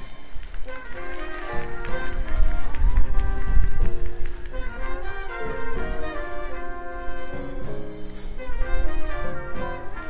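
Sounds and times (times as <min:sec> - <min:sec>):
drums and percussion: 0:00.0 - 0:10.0
saxophone and brass chords: 0:00.9 - 0:10.0.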